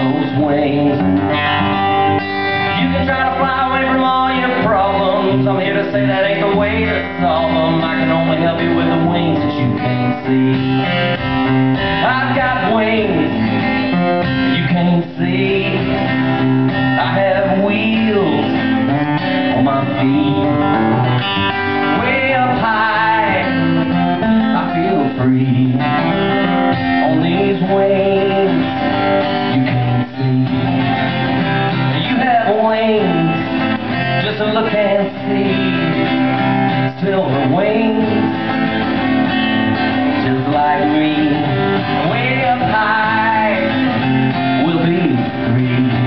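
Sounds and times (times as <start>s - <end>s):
acoustic guitar strumming: 0.0s - 46.0s.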